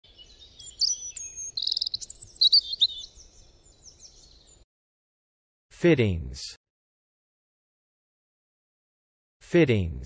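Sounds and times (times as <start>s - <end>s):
bird trill: 0.1s - 4.6s
birds chirping and whistling: 0.1s - 4.6s.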